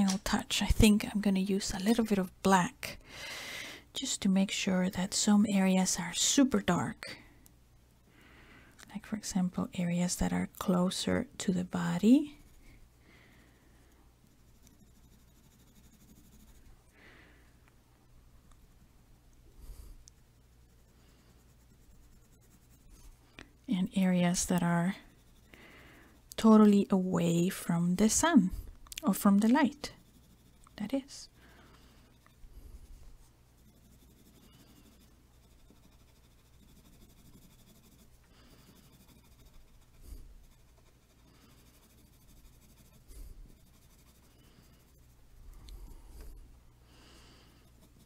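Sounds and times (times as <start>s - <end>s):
low steady hum: 0.0s - 48.0s
pencil scratching on paper: 10.0s - 12.8s, 14.2s - 16.7s, 20.4s - 46.4s, 47.0s - 48.0s.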